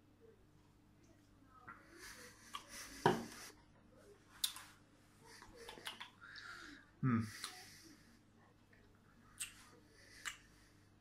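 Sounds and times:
person breathing: 5.2 - 8.2
mouth clicks: 5.6 - 6.2, 9.4 - 9.6.

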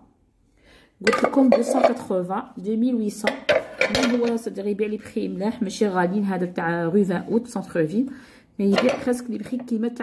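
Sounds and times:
dishes clinking and knocking: 1.1 - 2.1, 3.2 - 4.5, 8.7 - 9.2.

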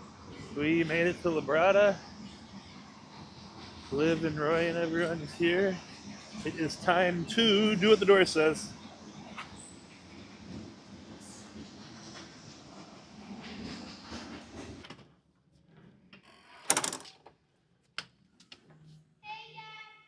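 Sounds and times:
outdoor background noise: 0.0 - 20.0.

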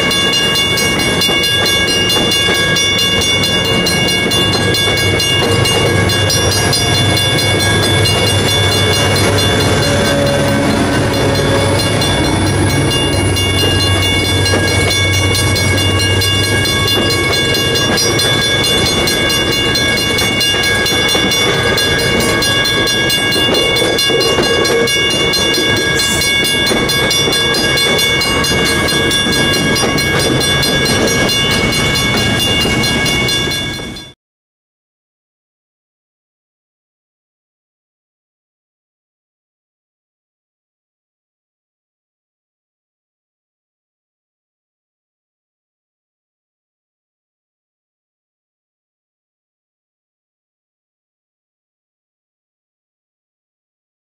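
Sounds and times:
diesel locomotive engine hum: 0.0 - 34.1
crossing bell ringing: 0.0 - 34.2
train coaches rolling by: 0.0 - 34.2.

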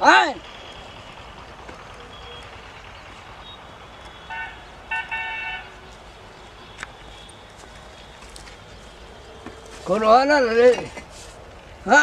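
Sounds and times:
outdoor background hiss: 0.0 - 12.0
vehicle horn honking: 4.1 - 5.8.

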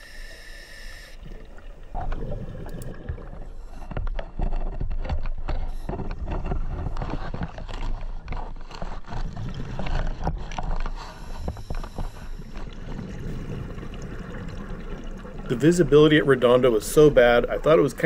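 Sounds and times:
bubbles: 1.2 - 3.8, 12.4 - 18.0
underwater rumble and gurgle: 1.2 - 18.0.

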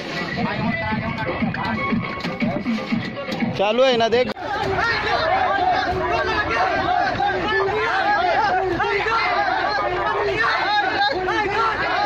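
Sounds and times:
men talking and calling: 0.0 - 12.0.

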